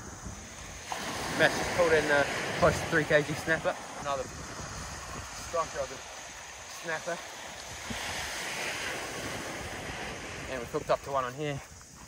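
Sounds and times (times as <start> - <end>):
surf breaking on beach: 0.0 - 11.9
wind on microphone: 0.0 - 12.0.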